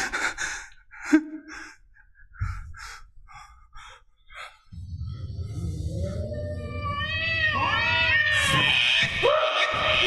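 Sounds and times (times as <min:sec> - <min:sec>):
man laughing: 0:00.0 - 0:03.0.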